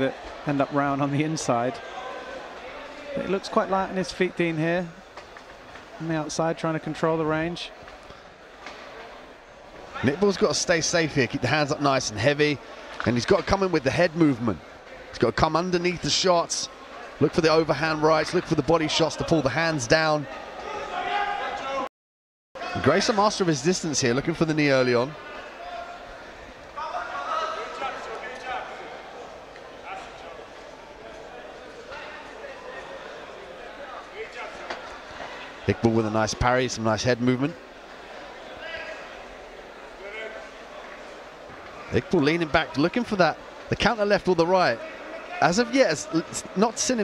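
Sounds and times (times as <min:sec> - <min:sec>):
venue background hiss: 0:00.0 - 0:21.5
indoor venue background noise: 0:00.0 - 0:21.9, 0:22.6 - 0:47.0.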